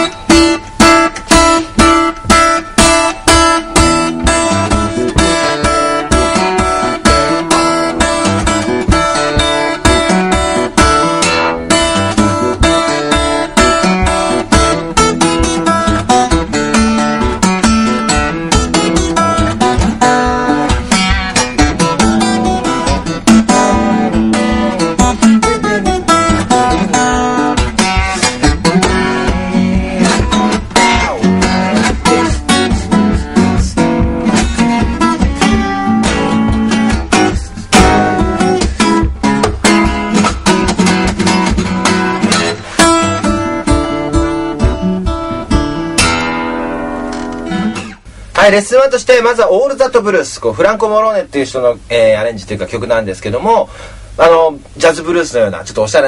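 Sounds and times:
fingerstyle acoustic guitar: 0.0s - 48.5s.

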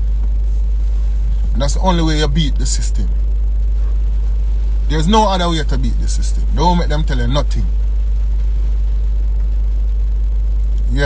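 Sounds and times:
car cabin low rumble: 0.0s - 11.0s
faint hiss: 0.0s - 11.0s
man's voice: 1.5s - 3.2s, 4.9s - 7.8s.

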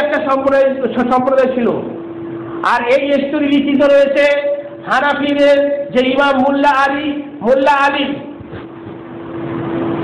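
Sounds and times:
steady hum: 0.0s - 10.0s.

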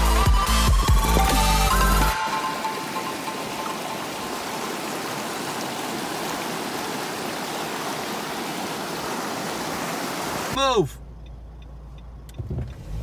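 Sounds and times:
river rushing over rocks: 1.1s - 10.6s.

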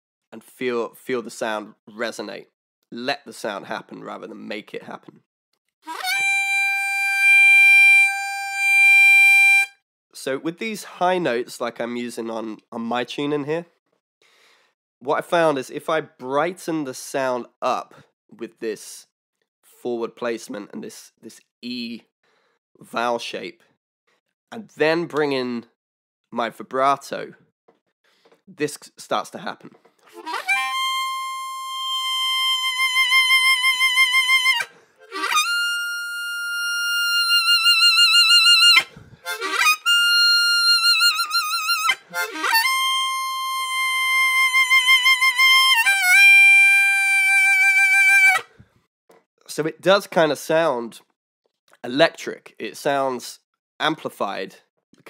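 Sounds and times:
harmonica holding high note: 5.8s - 9.8s, 30.1s - 48.5s.

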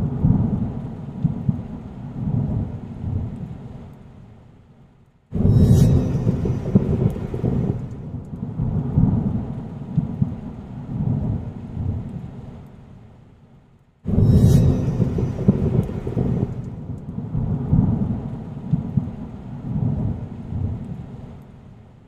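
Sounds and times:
low rolling thunder: 0.0s - 3.8s, 5.4s - 12.6s, 14.1s - 21.4s
rain: 0.0s - 22.0s.

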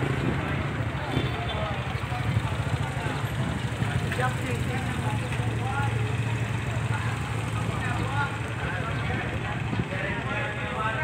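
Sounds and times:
motorcycle engines idling: 0.0s - 11.0s
people talking: 0.2s - 11.0s.

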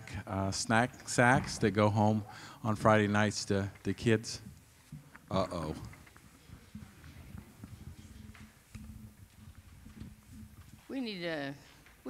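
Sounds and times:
microphone handling bumps: 1.2s - 1.9s, 6.5s - 12.0s
woman speaking: 10.9s - 11.7s.

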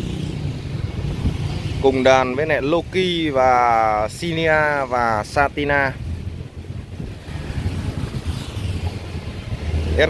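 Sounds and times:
wind buffeting microphone: 0.0s - 2.0s, 5.4s - 10.0s.

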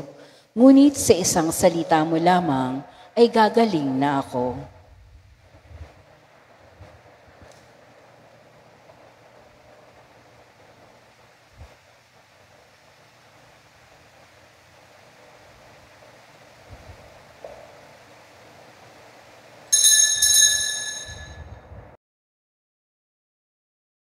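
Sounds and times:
bright bell ringing: 19.7s - 21.6s.

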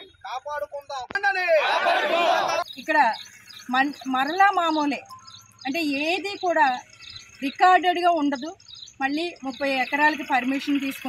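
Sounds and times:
faint insect chirping: 2.0s - 11.0s
woman speaking: 2.7s - 11.0s.

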